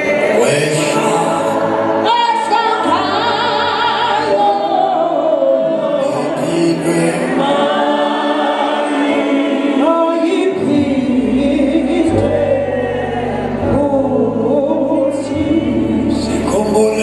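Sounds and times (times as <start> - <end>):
congregation singing in harmony: 0.0 - 17.0.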